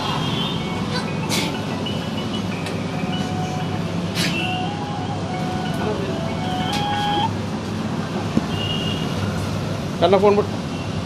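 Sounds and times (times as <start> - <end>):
traffic hum: 0.0 - 11.0
simple melody of single tones: 0.6 - 7.4.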